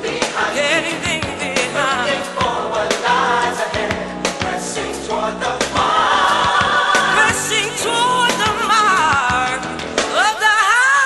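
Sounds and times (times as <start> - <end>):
gospel choir singing: 0.0 - 9.7
bass line: 0.0 - 10.2
drum hits: 3.7 - 4.8, 5.6 - 10.1.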